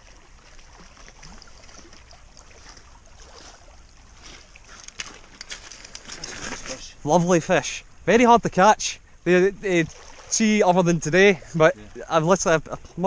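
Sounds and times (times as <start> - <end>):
water lapping at shingle shore: 0.0 - 7.4, 9.6 - 13.0
clicks and rustles on pebbles: 4.2 - 6.8.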